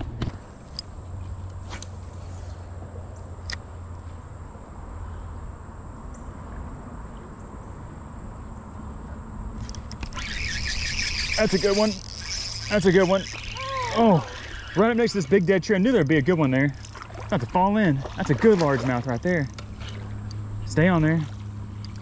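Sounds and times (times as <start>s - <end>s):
thin steady high tone: 10.2s - 16.8s
steady low rumble: 10.9s - 22.0s.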